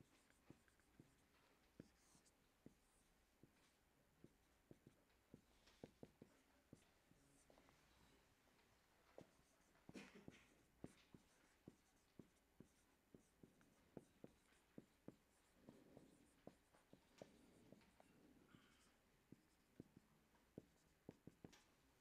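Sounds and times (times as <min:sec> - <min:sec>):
marker tapping on whiteboard: 0:04.2 - 0:07.5, 0:09.2 - 0:18.0, 0:18.6 - 0:21.8.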